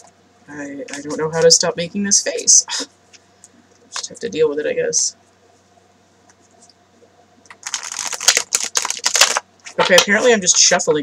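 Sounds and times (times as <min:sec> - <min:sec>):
cards being shuffled: 0:07.5 - 0:10.3.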